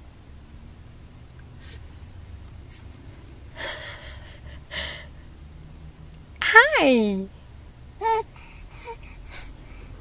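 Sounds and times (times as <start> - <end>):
low steady hum: 0.0 - 10.0
baby gasping: 8.0 - 10.0.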